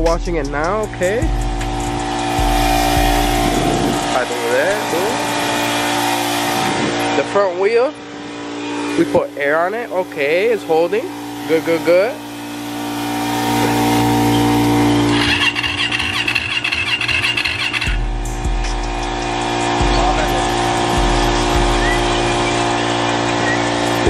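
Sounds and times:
droning tones: 0.0 - 24.0
electric starter cranking engine: 0.8 - 24.0.

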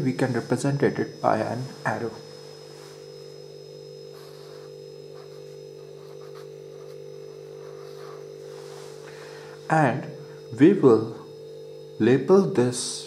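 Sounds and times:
low electrical hum: 0.0 - 13.0
pen scratching on writing surface: 4.2 - 8.3.

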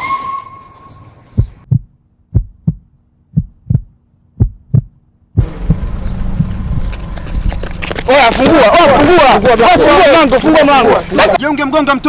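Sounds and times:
heartbeat thumps: 1.3 - 7.6.

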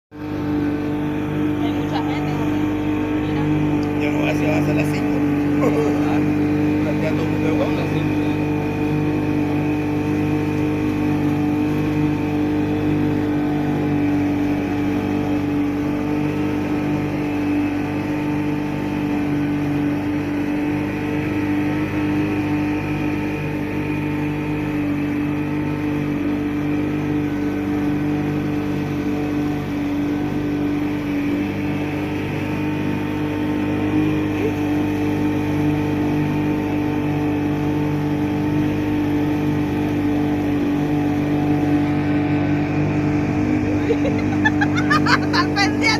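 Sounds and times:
outboard motor droning: 0.1 - 45.9
water rushing along hull: 0.1 - 45.9.

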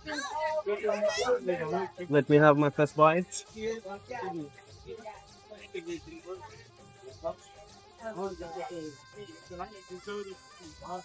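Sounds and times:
background music with held tones: 0.0 - 11.0
indistinct voices talking: 0.0 - 11.0.

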